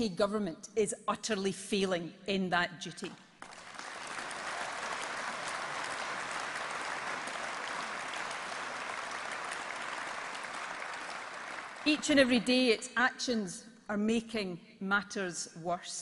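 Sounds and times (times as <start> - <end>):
large audience clapping: 3.4 - 12.4.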